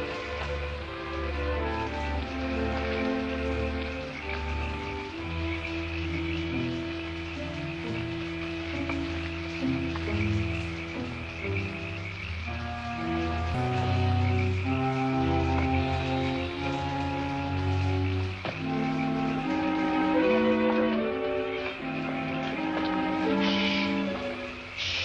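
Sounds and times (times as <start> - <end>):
frogs croaking: 0.0 - 25.0
slow orchestral music: 0.0 - 25.0.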